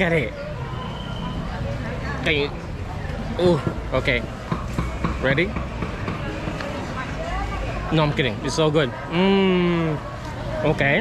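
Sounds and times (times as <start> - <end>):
faint voices of passers-by: 0.0 - 11.0
traffic rumble: 0.0 - 11.0.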